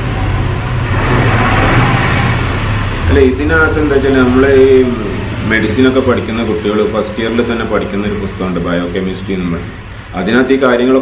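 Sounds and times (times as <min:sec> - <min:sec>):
vehicle passing: 0:00.0 - 0:11.0.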